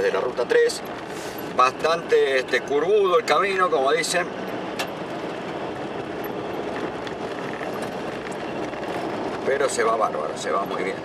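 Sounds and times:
car engine: 0.0 - 11.0
tyre and road noise: 0.0 - 11.0.

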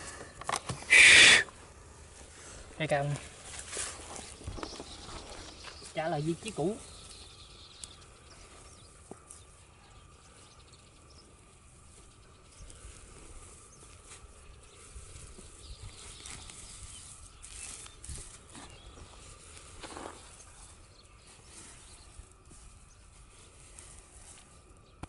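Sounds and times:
hands scraping sandy soil: 0.0 - 9.6, 10.3 - 25.0.

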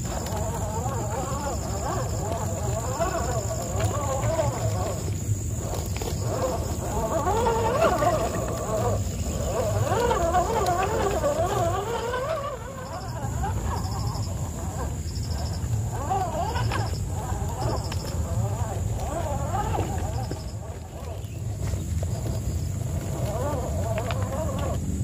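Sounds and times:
toy car electric motor whining: 0.0 - 25.0.

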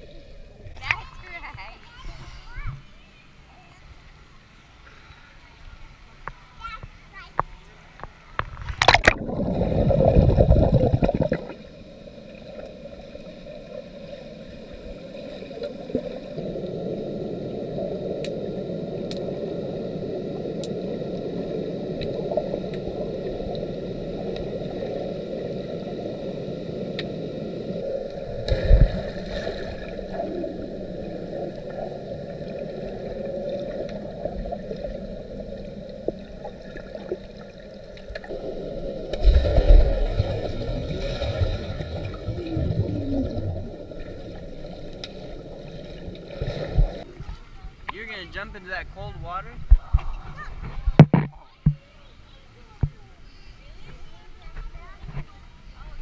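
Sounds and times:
underwater splashing and bubbling: 0.0 - 1.0, 8.4 - 47.4
muffled underwater rush: 8.4 - 52.0.

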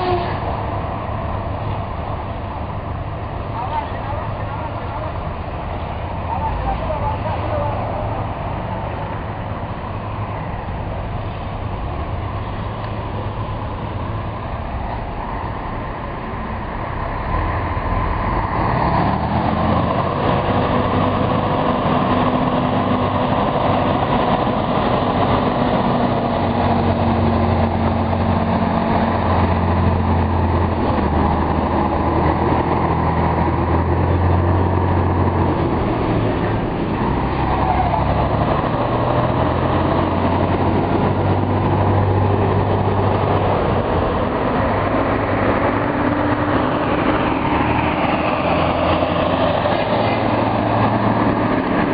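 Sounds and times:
heavy truck engines running: 0.0 - 51.9.

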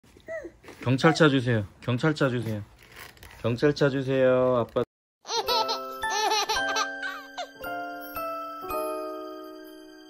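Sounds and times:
baby giggling: 5.3 - 7.6
tinkling bell-like music jingle: 5.5 - 10.0.

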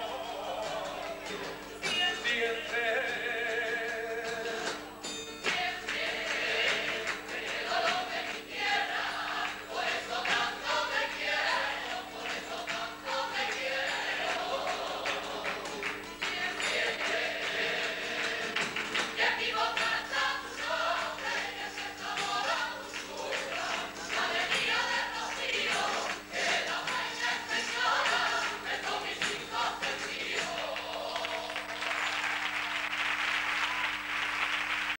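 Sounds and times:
choir singing: 0.0 - 4.6, 5.5 - 31.9
strummed guitars: 0.0 - 32.6
audience applauding: 14.2 - 19.2, 29.2 - 35.0.

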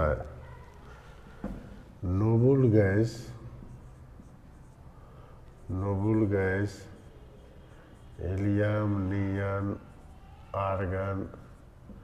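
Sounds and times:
marker writing on whiteboard: 2.8 - 12.0.

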